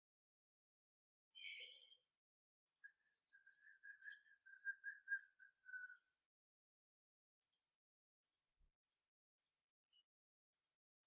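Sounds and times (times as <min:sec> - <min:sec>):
faint high-pitched whistling tone: 0:01.4 - 0:02.0, 0:02.8 - 0:06.3.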